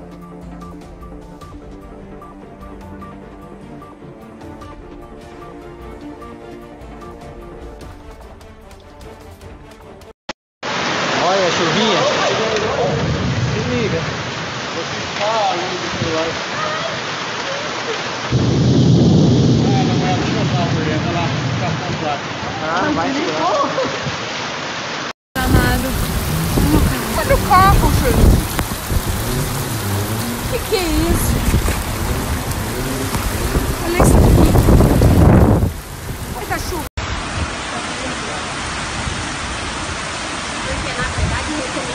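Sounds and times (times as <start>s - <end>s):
heavy rain in strong wind: 10.6s - 41.9s
deep rumble: 18.4s - 22.0s, 25.4s - 37.4s.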